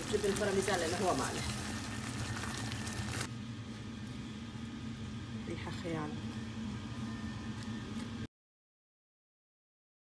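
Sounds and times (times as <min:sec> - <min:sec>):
sauce simmering in a pan: 0:00.0 - 0:03.3.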